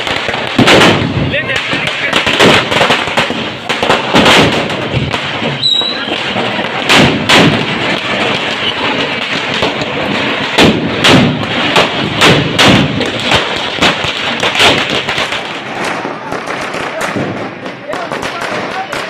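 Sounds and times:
firecrackers bursting: 0:00.0 - 0:19.0
crowd noise: 0:01.0 - 0:19.0.

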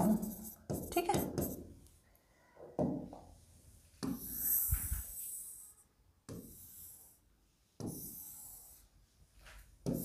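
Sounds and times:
stylus stroking whiteboard screen: 0:00.0 - 0:10.0.

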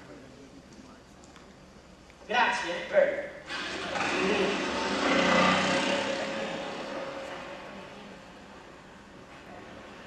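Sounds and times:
motor scooter pulling away: 0:03.5 - 0:07.7.

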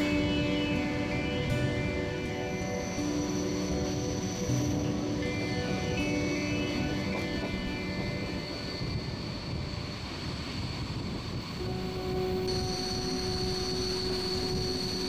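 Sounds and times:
steady whine: 0:00.0 - 0:15.0.

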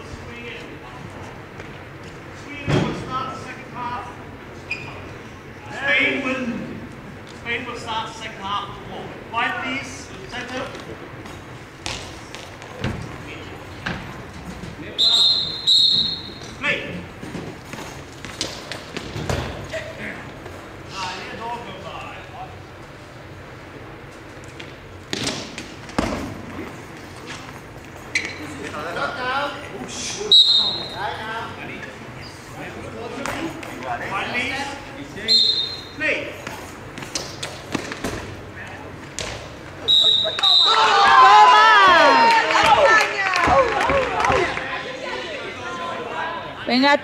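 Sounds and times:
referee's whistle blasts: 0:15.0 - 0:16.4, 0:30.3 - 0:31.0, 0:35.3 - 0:36.0, 0:39.8 - 0:40.9.

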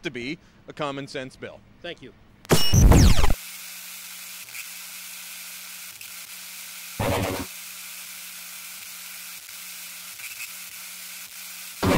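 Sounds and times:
loud burst of noise: 0:02.5 - 0:03.4, 0:07.0 - 0:07.6
electronic hiss: 0:05.5 - 0:11.9.

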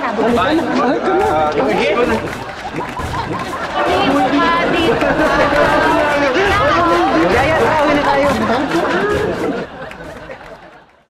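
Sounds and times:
people talking and shouting: 0:00.0 - 0:11.0.

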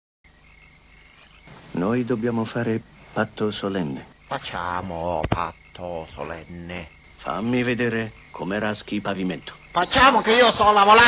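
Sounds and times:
faint hiss: 0:00.3 - 0:11.0
man speaking: 0:01.5 - 0:04.1, 0:04.7 - 0:09.7.

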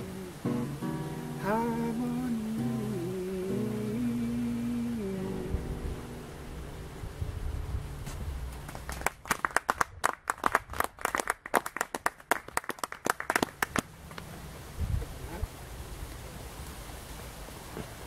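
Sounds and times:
person singing: 0:00.0 - 0:06.3
acoustic guitar chord: 0:00.0 - 0:08.1
audience clapping: 0:08.7 - 0:13.9.

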